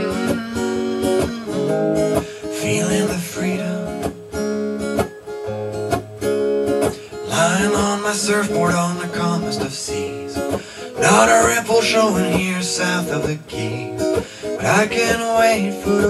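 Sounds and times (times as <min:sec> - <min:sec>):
amplified acoustic guitar strumming: 0:00.0 - 0:16.0.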